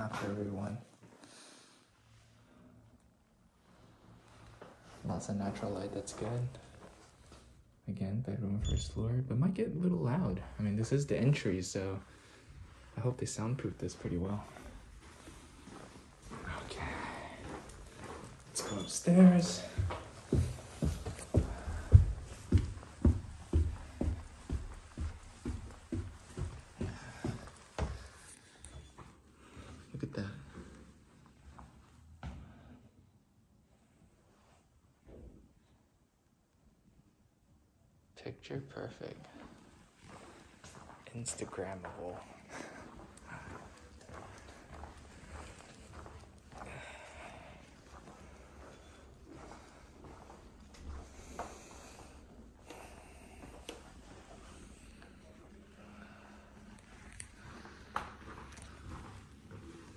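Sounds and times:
footsteps on hard floor: 14.0 - 29.2, 39.4 - 46.7, 47.6 - 54.7, 56.8 - 59.9.

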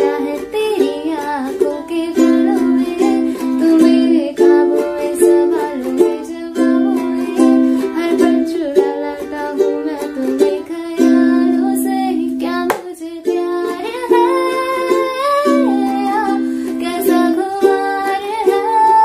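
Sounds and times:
ukulele strumming chords: 0.0 - 19.0
woman singing: 0.0 - 19.0.

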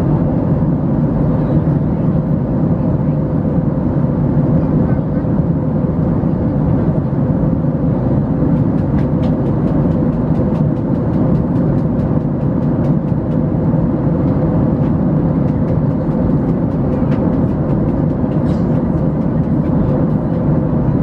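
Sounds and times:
jet engines roaring in cabin: 0.0 - 21.0
steady hum: 0.0 - 21.0.

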